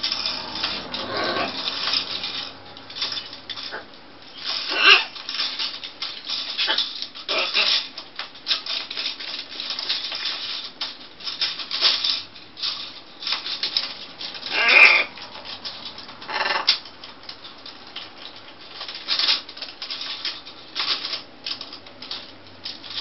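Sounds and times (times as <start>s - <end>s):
plastic bracelets clattering: 0.0s - 23.0s.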